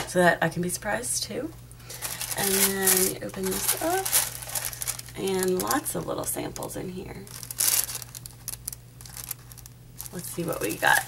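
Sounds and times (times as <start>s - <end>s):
paper shred and box rustling: 1.9s - 11.0s.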